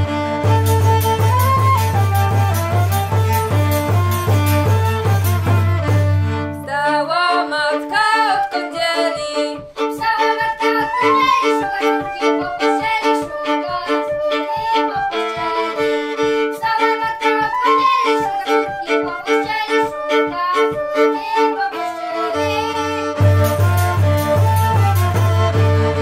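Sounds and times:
flute: 0:00.0 - 0:06.4, 0:07.8 - 0:26.0
deep bowed bass: 0:00.0 - 0:06.7, 0:22.6 - 0:26.0
fiddle: 0:00.0 - 0:26.0
frame drum beat: 0:00.4 - 0:06.4, 0:23.2 - 0:26.0.

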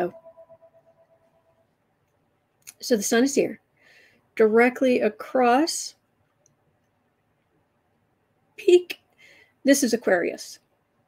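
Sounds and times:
faint pulsing ringing tone: 0:00.0 - 0:01.8.

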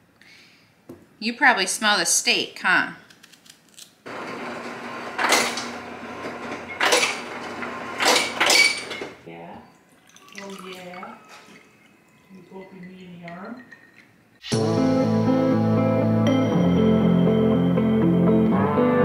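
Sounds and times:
ice dispenser whirring: 0:04.1 - 0:09.2.

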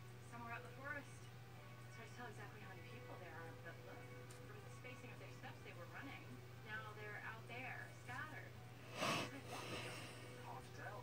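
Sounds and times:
low steady hum: 0:00.0 - 0:11.0
television dialogue: 0:00.0 - 0:11.0.

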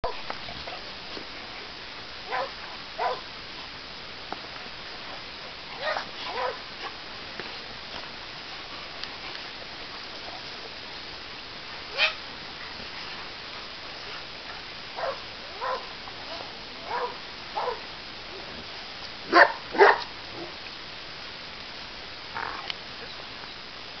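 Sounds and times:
steady hiss: 0:00.0 - 0:24.0
dog barking: 0:02.3 - 0:03.2, 0:05.8 - 0:06.6, 0:15.0 - 0:15.9, 0:16.8 - 0:17.8, 0:19.3 - 0:20.1.

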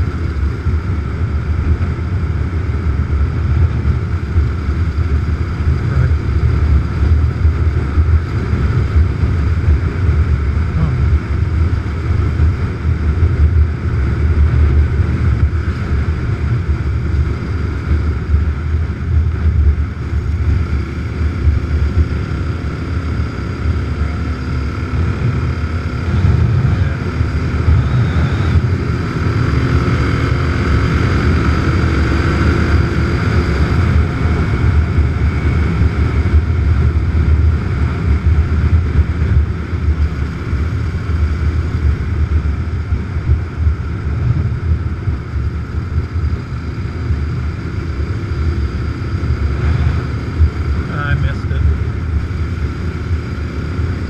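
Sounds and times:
motorcycle engine drone: 0:00.0 - 0:54.0
wind rumble on microphone: 0:00.0 - 0:54.0.

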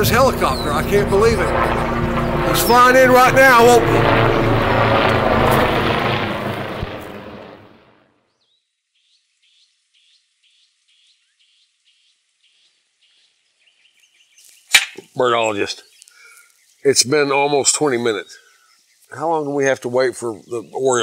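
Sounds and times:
helicopter noise: 0:00.0 - 0:08.1
bird trill: 0:08.3 - 0:14.8
faint bird chirps: 0:15.4 - 0:19.2.

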